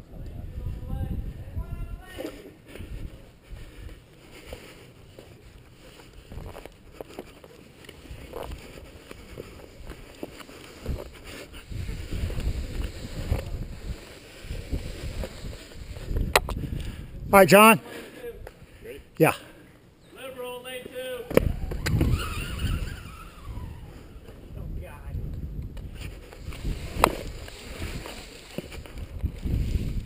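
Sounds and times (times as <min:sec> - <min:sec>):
wind rumble on microphone: 0:00.0 - 0:02.2, 0:02.8 - 0:04.0, 0:10.8 - 0:17.4, 0:21.3 - 0:30.0
rope and boots scraping rock: 0:02.1 - 0:16.4, 0:25.8 - 0:30.0.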